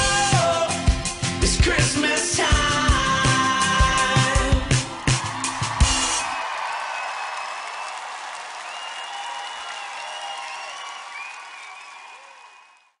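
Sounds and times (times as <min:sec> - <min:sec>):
rushing applause-like noise: 0:04.2 - 0:13.0.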